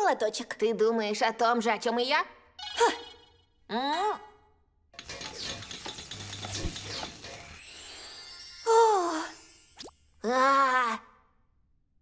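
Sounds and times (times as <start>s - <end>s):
rising magical shimmer: 6.5s - 10.2s.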